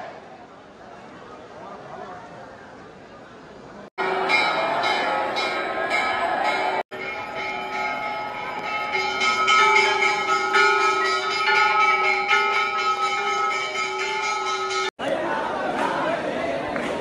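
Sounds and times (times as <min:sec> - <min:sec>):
dense crowd noise: 0:00.0 - 0:17.0
temple bells ringing: 0:04.0 - 0:15.0.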